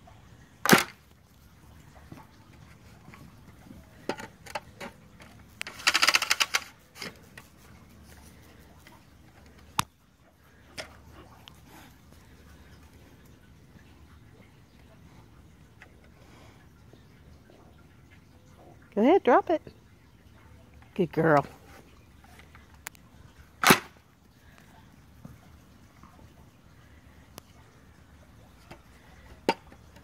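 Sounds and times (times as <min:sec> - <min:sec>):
rapid rattle of clicks: 0:05.6 - 0:06.8.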